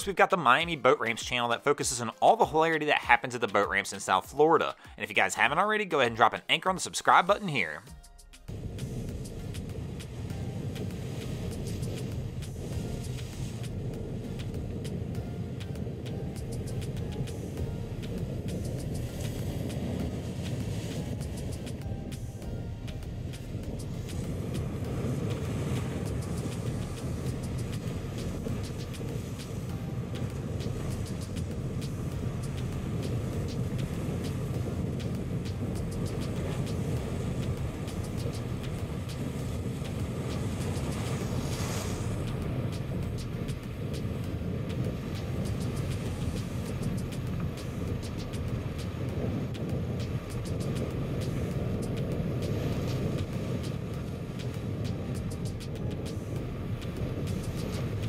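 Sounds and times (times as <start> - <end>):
breaking waves: 0.0 - 7.9, 8.5 - 58.0
outboard motor running: 8.5 - 58.0
rushing water: 8.5 - 58.0
wind: 8.5 - 58.0.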